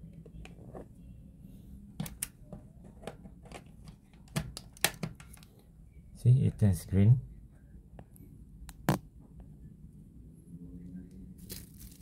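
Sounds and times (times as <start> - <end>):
plastic rustling: 11.4 - 12.0.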